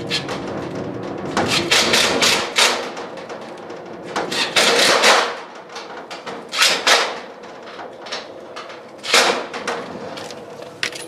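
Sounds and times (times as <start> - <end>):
metal knocks and clanks: 0.0 - 11.0.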